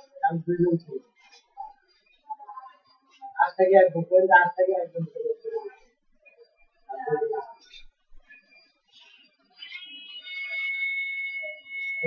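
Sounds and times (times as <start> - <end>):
high-pitched electronic tone: 0.0 - 12.0
higher electronic tones: 0.0 - 12.0.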